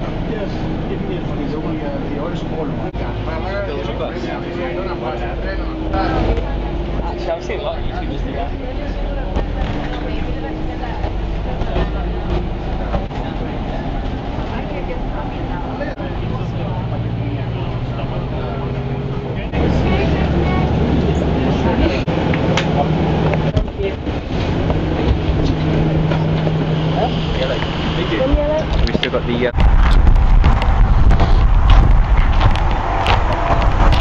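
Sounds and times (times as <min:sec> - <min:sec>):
bus engine hum: 0:00.0 - 0:34.0
road noise inside bus: 0:00.0 - 0:34.0.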